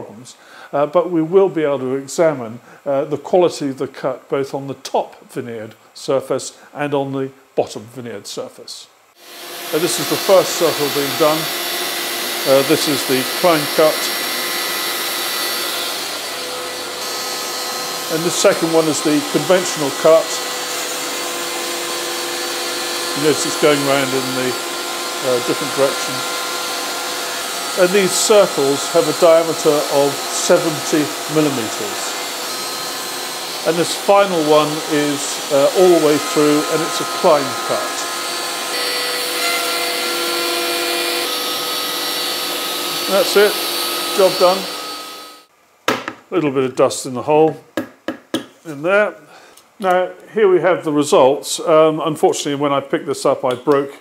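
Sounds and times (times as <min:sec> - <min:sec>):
rushing cutting noise: 0:09.2 - 0:45.4
router whining: 0:09.2 - 0:45.5.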